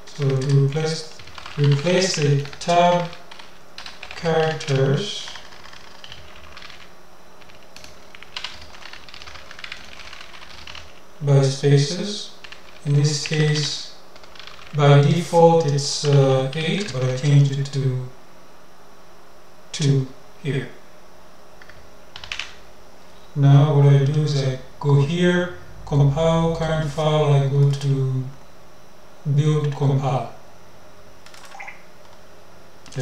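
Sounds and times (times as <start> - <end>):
computer keyboard typing: 0.1 - 11.0, 12.4 - 14.8, 15.6 - 17.3, 21.6 - 22.6, 31.2 - 32.2.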